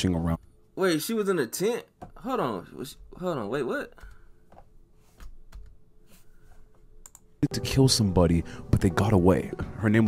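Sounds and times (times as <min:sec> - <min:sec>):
computer keys clicking: 0:07.0 - 0:07.3.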